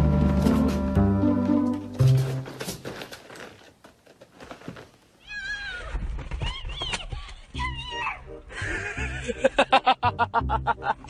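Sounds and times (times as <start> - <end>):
background music: 0.0 - 2.6, 7.6 - 11.0.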